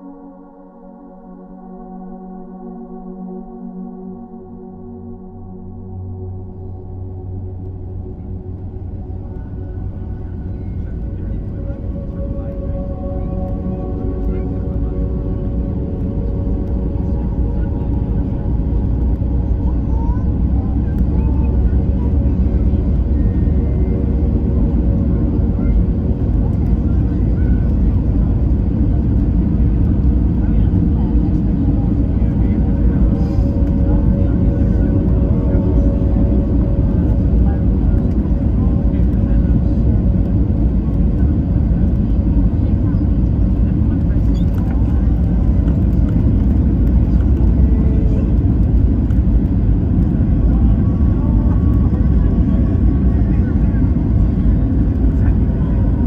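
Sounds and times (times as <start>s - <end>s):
faint steady hum: 0.0s - 56.0s
jet engine rumble and rushing air: 3.3s - 56.0s.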